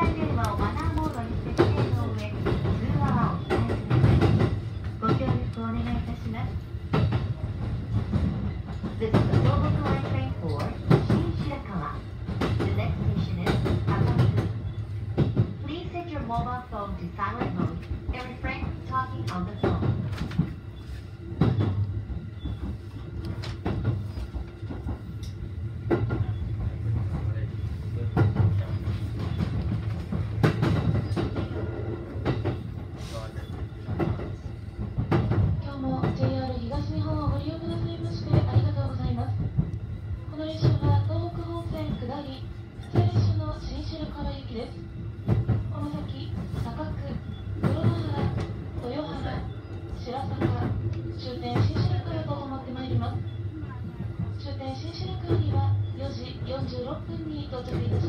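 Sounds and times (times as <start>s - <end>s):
electric train running hum: 0.0s - 58.0s.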